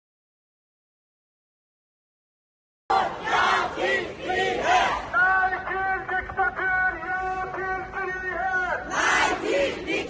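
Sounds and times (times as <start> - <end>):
crowd chanting in unison: 2.9 - 5.2, 8.6 - 10.0.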